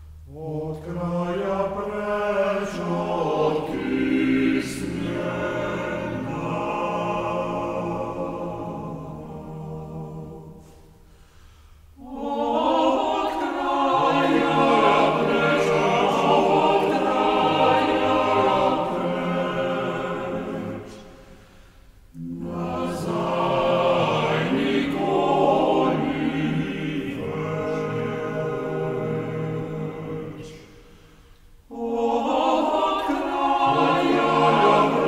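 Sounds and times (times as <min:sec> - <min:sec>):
a cappella group singing: 0:00.0 - 0:11.1, 0:11.9 - 0:35.0.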